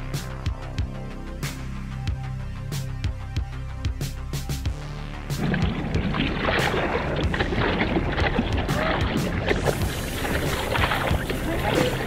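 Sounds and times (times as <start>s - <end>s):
hands stroking water: 5.3s - 12.0s
water splashing around surfboard: 5.3s - 12.0s.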